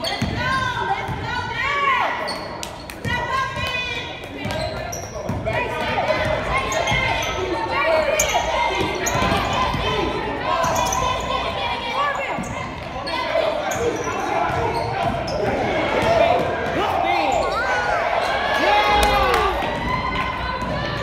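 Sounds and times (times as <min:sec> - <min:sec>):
basketball bouncing on court: 0:00.0 - 0:01.3, 0:03.0 - 0:07.2, 0:19.0 - 0:21.0.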